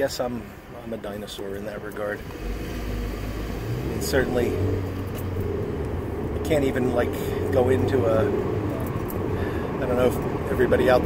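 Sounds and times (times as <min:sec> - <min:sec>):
car interior rumble: 0:01.2 - 0:11.0.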